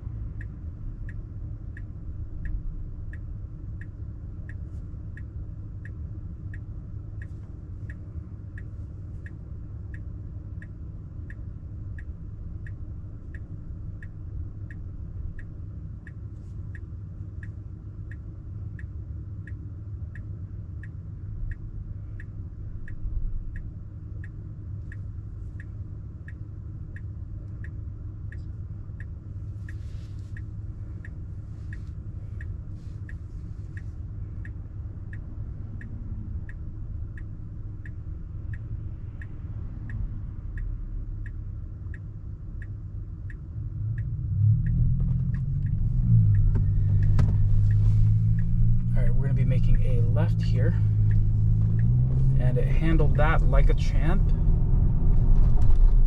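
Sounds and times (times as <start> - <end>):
low road and drive rumble: 0.0 - 56.0
turn signal ticking: 0.0 - 56.0.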